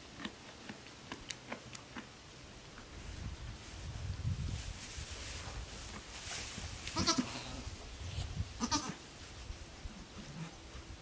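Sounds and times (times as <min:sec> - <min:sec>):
goat bleating: 0:07.0 - 0:07.4, 0:08.6 - 0:09.0.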